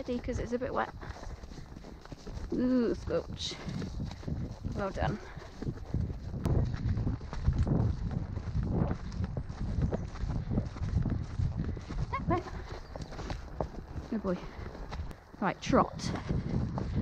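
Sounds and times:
pony hoofbeats on wet grass: 0.0s - 17.0s.

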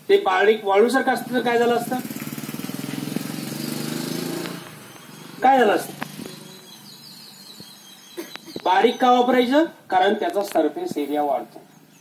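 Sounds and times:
small engine running: 1.2s - 6.8s.

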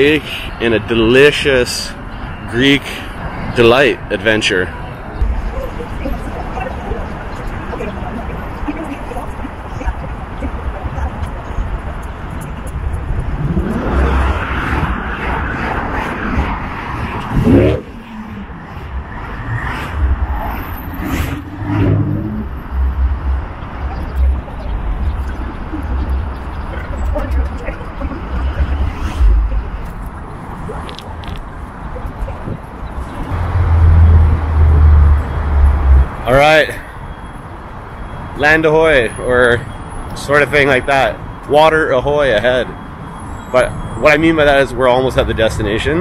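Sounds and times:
cars passing: 0.0s - 46.0s.

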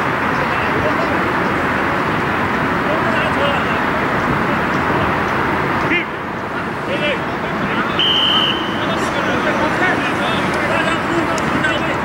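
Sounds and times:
background traffic noise: 0.0s - 12.0s
distant players calling out: 0.0s - 12.0s.

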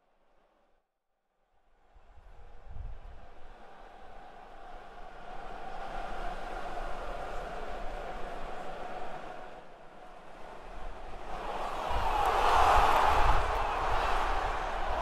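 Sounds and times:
city noise rumble and hiss: 1.7s - 15.0s.

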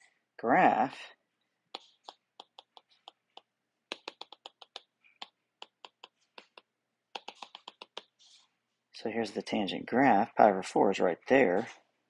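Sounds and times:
stylus tapping on tablet screen: 1.7s - 8.3s.

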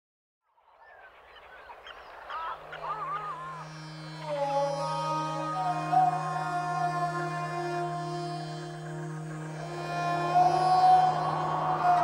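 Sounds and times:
low steady drone: 3.3s - 12.0s.

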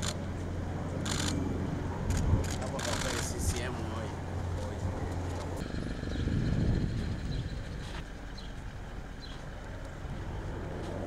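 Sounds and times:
vehicle engine hum: 0.0s - 11.0s
low rumble: 4.1s - 11.0s.

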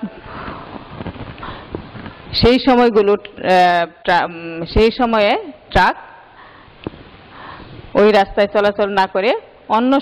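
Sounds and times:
faint steady hiss: 0.0s - 10.0s
soft intake of breath: 0.2s - 2.3s, 6.3s - 8.0s.

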